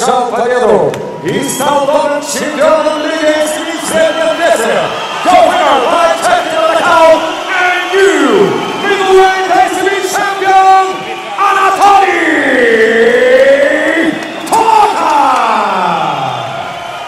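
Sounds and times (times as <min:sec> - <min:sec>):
announcer's amplified voice: 0:00.0 - 0:16.4
arena crowd: 0:00.0 - 0:17.0.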